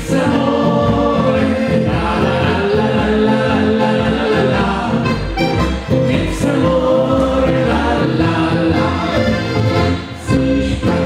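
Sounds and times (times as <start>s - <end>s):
double bass playing: 0.0s - 11.0s
men singing together: 0.0s - 11.0s
button accordion playing: 1.5s - 11.0s.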